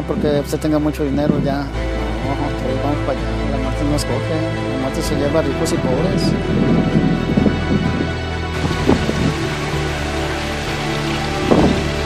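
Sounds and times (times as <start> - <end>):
rain hiss: 8.5 - 12.0
thunder rolls: 8.6 - 9.9, 11.4 - 12.0.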